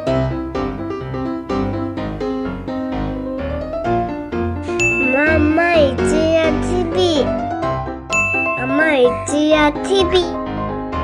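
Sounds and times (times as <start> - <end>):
chiming jingle music: 4.7 - 6.5, 8.1 - 9.8
high voice sliding: 5.0 - 7.3, 8.5 - 10.4.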